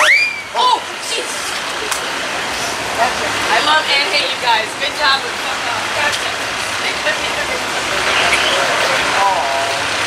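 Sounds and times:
people's voices: 0:00.0 - 0:10.0
road traffic: 0:00.0 - 0:10.0.

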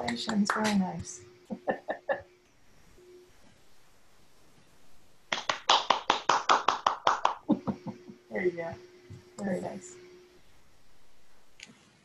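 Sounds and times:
rapid hand claps: 0:05.3 - 0:07.6.

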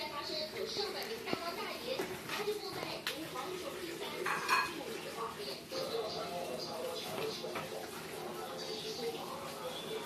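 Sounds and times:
faint voices: 0:00.0 - 0:10.0
dishes and pots clinking: 0:04.0 - 0:05.3.

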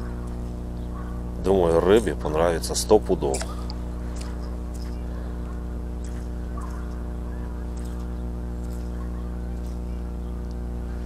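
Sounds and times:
low buzzing hum: 0:00.0 - 0:11.0.

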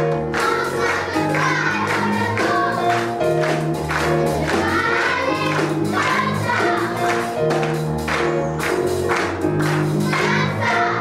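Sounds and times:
choir singing with accompaniment: 0:00.0 - 0:11.0.

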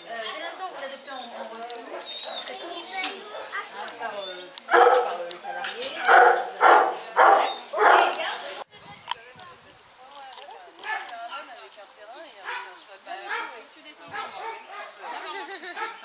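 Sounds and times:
people chatting: 0:00.0 - 0:16.0
dog barking loudly: 0:04.7 - 0:08.3, 0:12.4 - 0:12.7, 0:13.3 - 0:15.1, 0:15.8 - 0:16.0.

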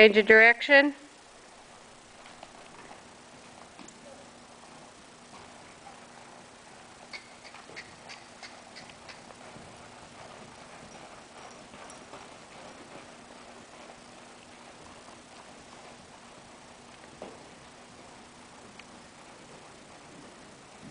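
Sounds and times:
horse hoofbeats on sand: 0:01.8 - 0:20.9
sharp clicks: 0:07.1 - 0:09.3.

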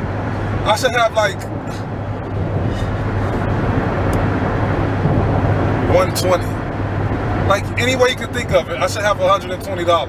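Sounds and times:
car cabin road and engine noise: 0:00.0 - 0:10.0.

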